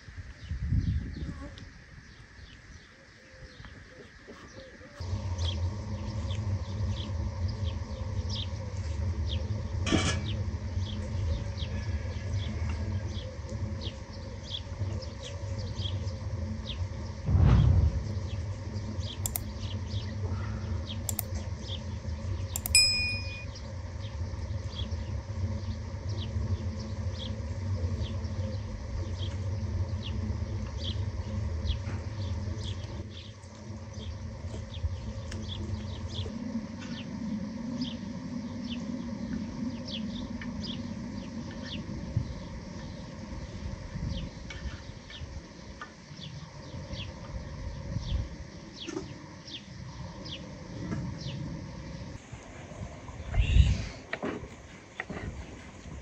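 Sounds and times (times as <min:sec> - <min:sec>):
sharp clicks: 0:19.3 - 0:19.5, 0:21.1 - 0:21.3, 0:22.6 - 0:23.4
short metallic ding: 0:22.6 - 0:23.5.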